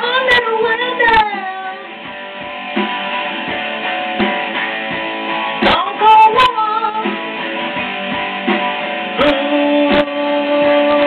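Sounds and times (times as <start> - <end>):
guitar strum hits: 1.9 - 11.0
high voice singing long note: 9.2 - 11.0.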